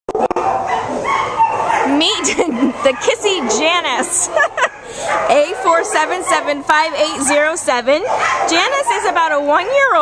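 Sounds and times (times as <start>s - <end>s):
dog whining: 0.1s - 6.5s.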